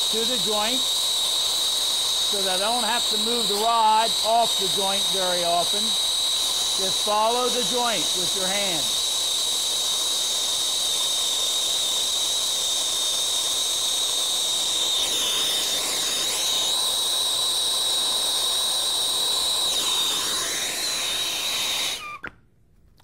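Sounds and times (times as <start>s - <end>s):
torch flame hissing with whistle: 0.0s - 22.3s.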